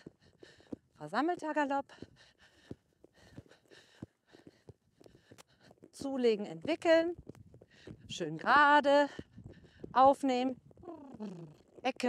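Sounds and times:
horse hooves cantering on sand: 0.0s - 12.0s.

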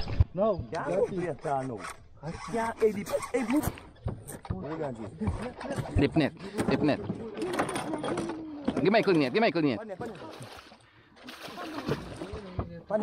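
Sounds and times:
rubbing and clicking noises: 0.7s - 8.4s.

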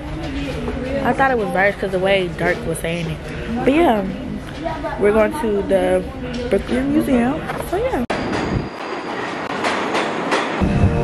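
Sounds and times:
subway train wheels on rails: 7.5s - 11.0s.

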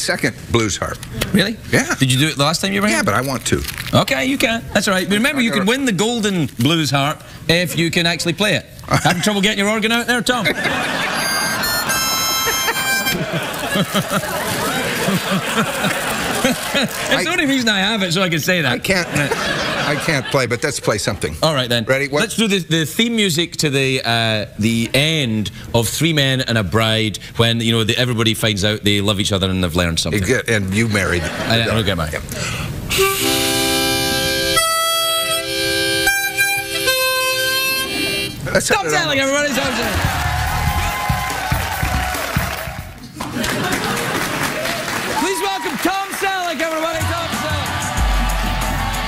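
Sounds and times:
harmonica chords: 10.8s - 13.4s, 32.9s - 38.5s.

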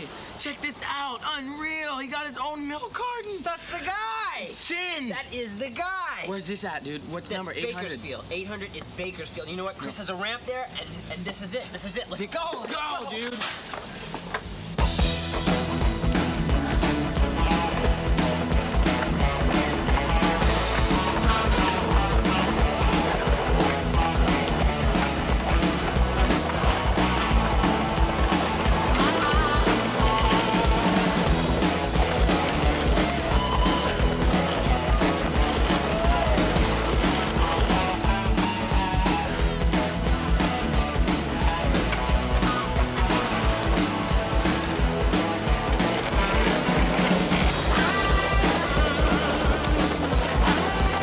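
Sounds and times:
rock music with drum beat: 14.8s - 51.0s.

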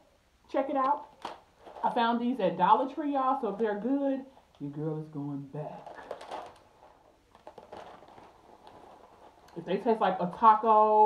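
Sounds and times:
plastic bag rustling and clicking: 0.8s - 4.8s, 5.6s - 11.0s.

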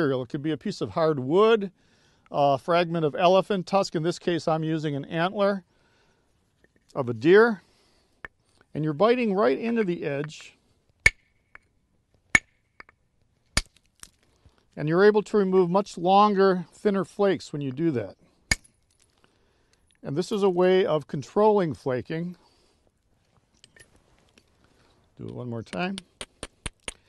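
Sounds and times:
antler hammer striking stone: 11.0s - 11.7s, 12.3s - 13.0s, 13.6s - 14.2s, 18.5s - 18.7s, 25.7s - 27.0s.

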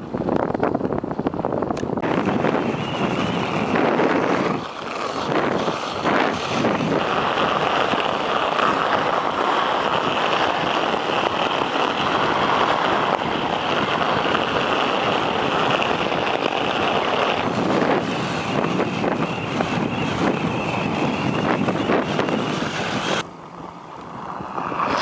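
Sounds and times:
wind on microphone: 0.0s - 25.0s
skate blades scraping over ice: 2.0s - 23.2s, 24.2s - 25.0s.

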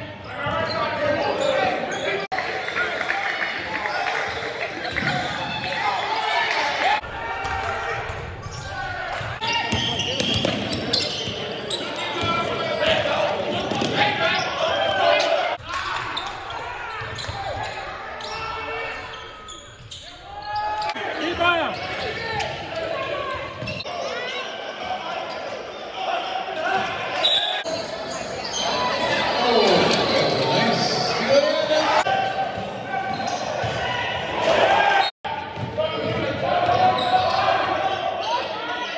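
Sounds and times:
voices echoing in a hall: 0.0s - 38.9s.

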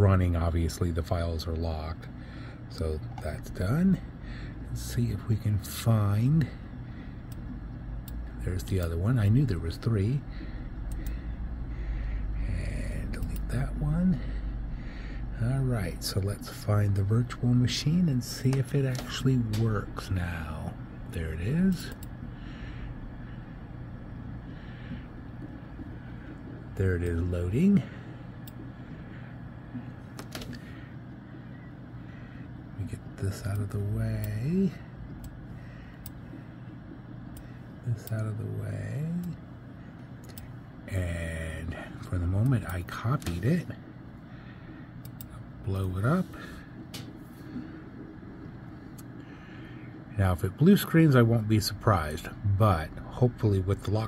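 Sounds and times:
computer fans humming: 0.0s - 54.0s.

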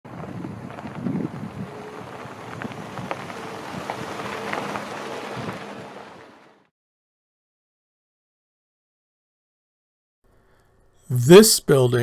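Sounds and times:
wind noise on microphone: 0.1s - 6.2s
low engine hum: 0.1s - 6.7s
tyres crunching on gravel: 0.1s - 6.7s.

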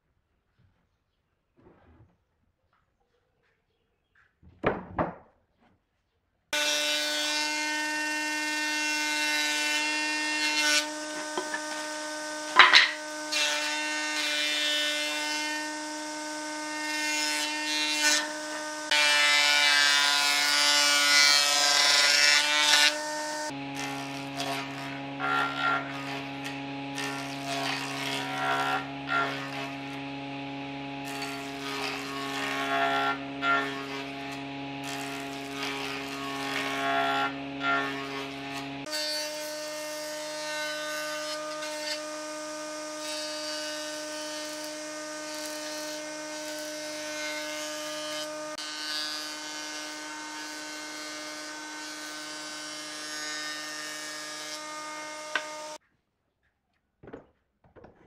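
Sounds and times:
jointer-planer motor hum: 6.6s - 55.8s
wood knocking on machine: 11.1s - 13.8s, 55.2s - 55.8s.

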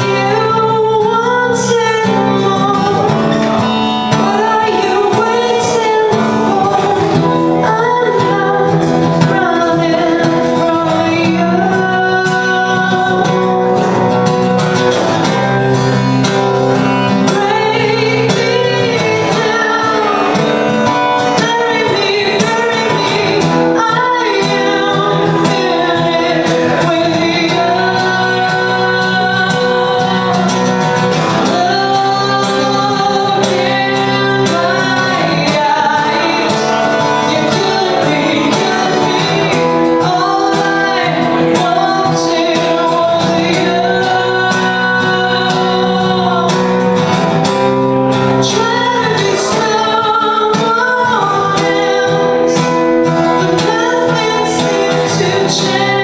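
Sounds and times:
strummed acoustic guitar: 0.0s - 56.0s
woman singing: 0.0s - 56.0s.

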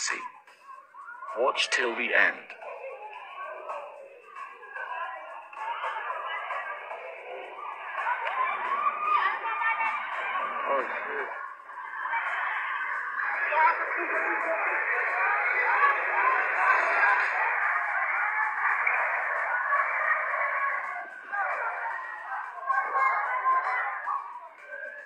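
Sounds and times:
people talking and calling out: 0.0s - 25.0s.

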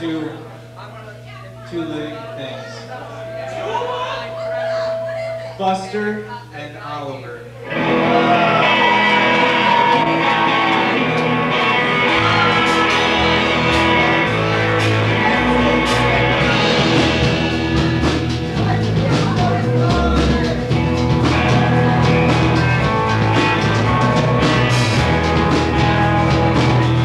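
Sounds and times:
live band with electric guitar: 7.6s - 27.0s
drum and cymbal hits: 12.1s - 27.0s.

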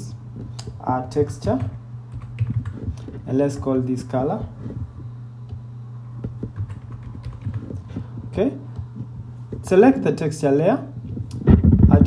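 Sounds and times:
steady low hum: 0.0s - 12.0s
computer keyboard keys clicking: 1.5s - 3.2s, 6.2s - 8.1s.

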